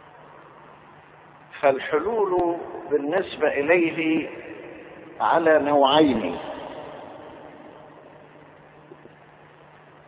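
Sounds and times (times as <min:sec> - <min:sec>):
background hiss: 0:00.0 - 0:10.0
faint low hum: 0:00.0 - 0:10.0.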